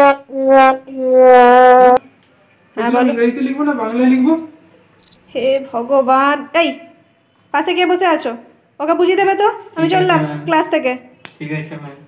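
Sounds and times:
cricket chirping: 5.0 - 5.6.

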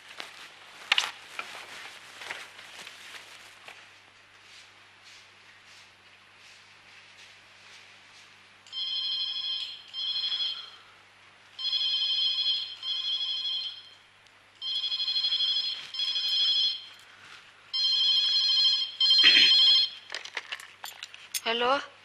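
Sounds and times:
telephone ringing: 8.7 - 10.8, 11.6 - 14.0, 14.6 - 17.0, 17.7 - 20.1.

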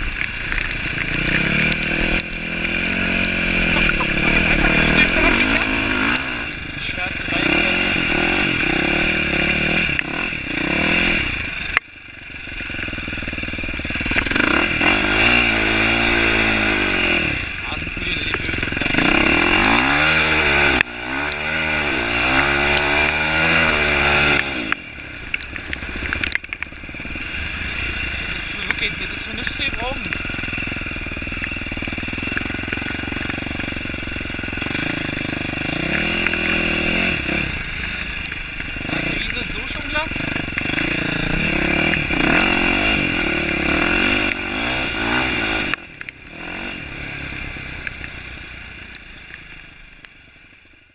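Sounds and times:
motocross engine revving: 0.0 - 48.8.

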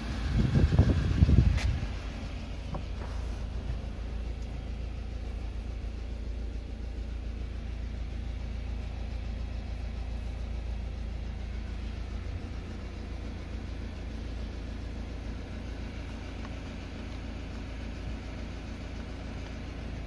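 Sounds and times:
diesel van engine idling: 0.0 - 20.0.

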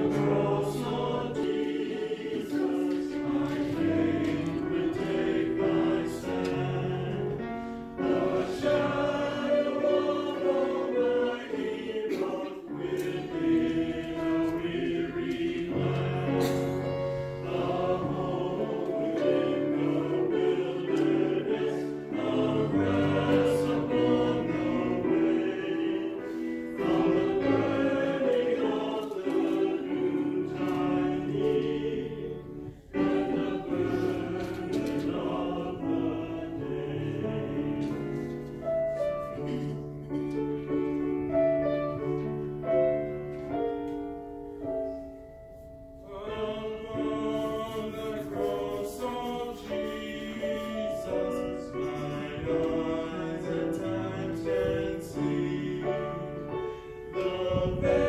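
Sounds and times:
mixed choir singing: 0.0 - 45.0, 46.0 - 58.0
grand piano: 0.0 - 58.0.

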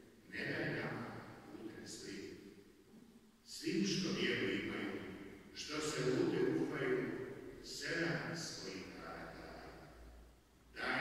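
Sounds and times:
man speaking with echo: 0.0 - 2.8, 3.4 - 11.0.

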